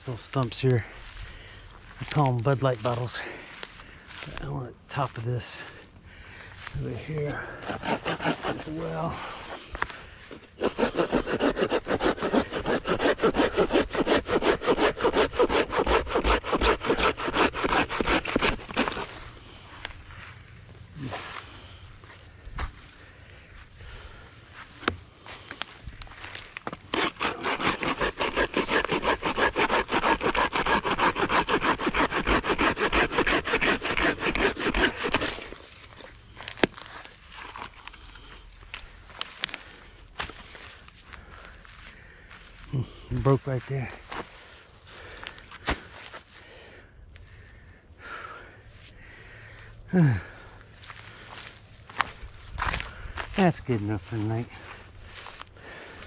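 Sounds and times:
hand saw cutting log: 7.1 - 19.6, 26.2 - 36.9.

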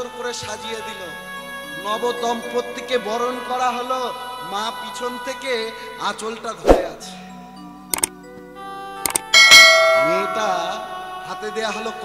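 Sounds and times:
hand cymbals clash ringing: 9.4 - 10.9.

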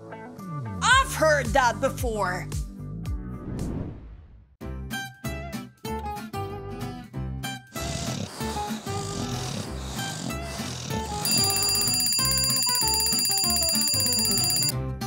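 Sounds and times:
light background music: 0.0 - 2.8
alarm clock bell ringing: 11.2 - 14.7.

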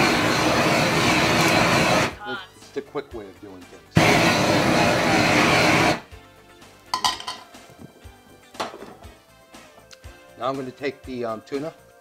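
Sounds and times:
blowtorch flame blasting: 0.0 - 2.2, 3.9 - 6.1
utensils and dishes clinking: 6.9 - 7.6.

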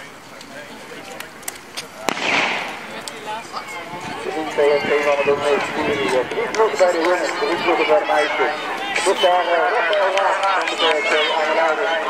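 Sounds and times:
people talking at once: 2.0 - 12.0.

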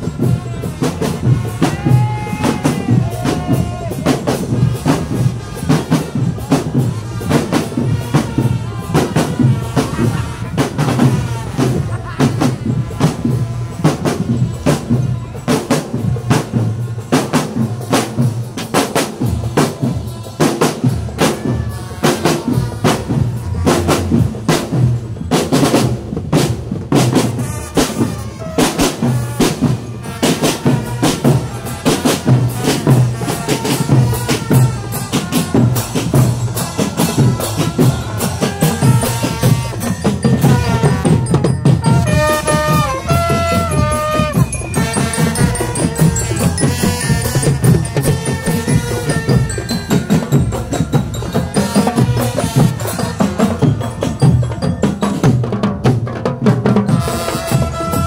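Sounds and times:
bass drum beat: 0.0 - 58.0
cymbals: 0.0 - 58.0
melody over drums: 0.0 - 58.0
snare drums with rolls: 0.0 - 58.0.

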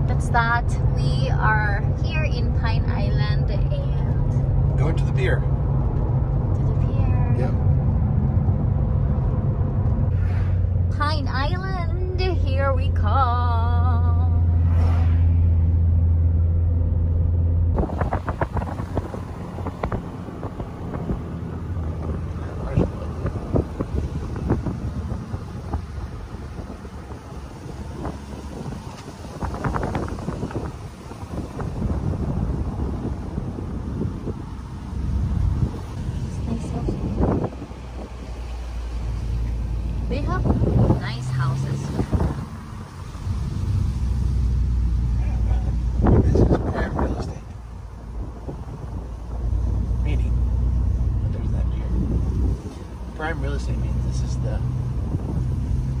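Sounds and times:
car cabin rumble: 0.0 - 56.0
loud low hum: 0.0 - 56.0.

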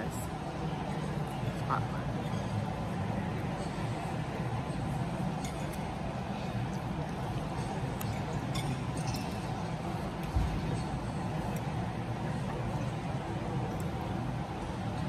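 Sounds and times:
dining-room noise: 0.0 - 15.0.

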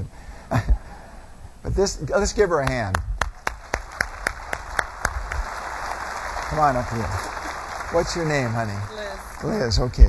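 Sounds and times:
close loud clapping: 2.6 - 9.6
audience applause: 2.7 - 10.0.

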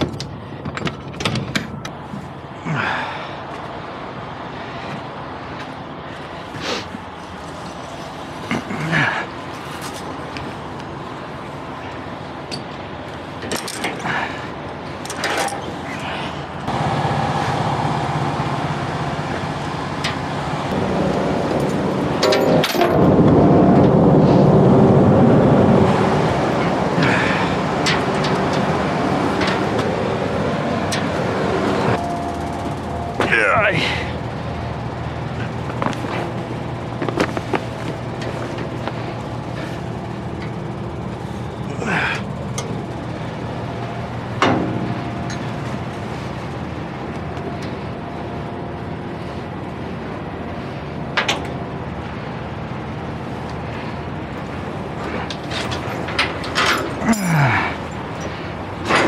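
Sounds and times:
heavy engine running: 0.0 - 59.0
metal knocks and clanks: 21.6 - 23.9.

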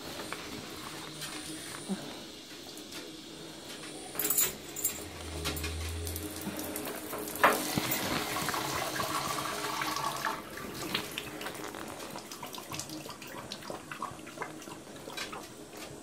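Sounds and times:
water running into tub: 0.0 - 16.0.

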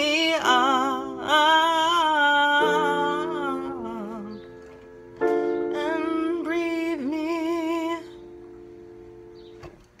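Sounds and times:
held music chord: 0.4 - 9.6.

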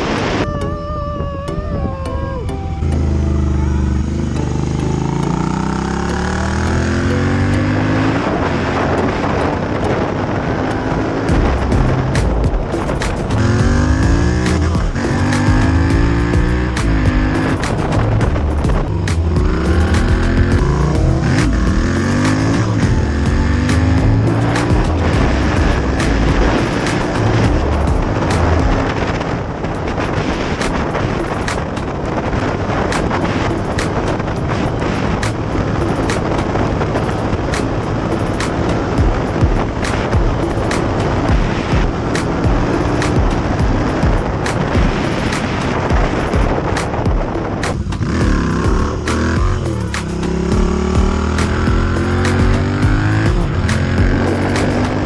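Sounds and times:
wind rush on microphone: 0.0 - 4.7, 5.7 - 55.0
background music: 0.0 - 55.0
motorcycle engine revving: 2.7 - 55.0.

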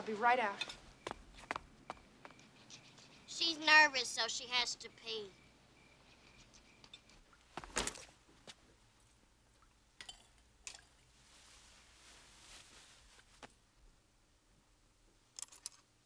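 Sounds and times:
soft rustle: 10.9 - 14.0
small objects clicking and clinking: 15.4 - 15.9.

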